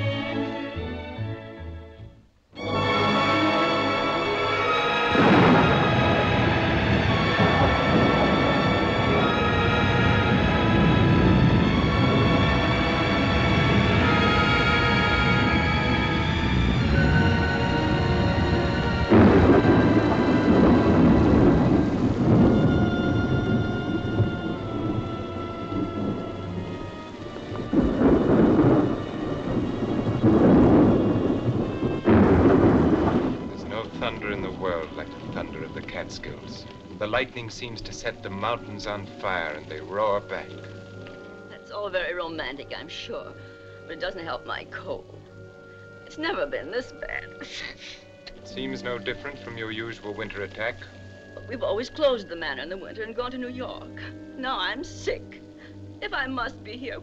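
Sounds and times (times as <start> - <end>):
heavy rainstorm: 0.0 - 57.0
orchestral film music: 0.0 - 57.0
thunder rumbling: 2.6 - 57.0.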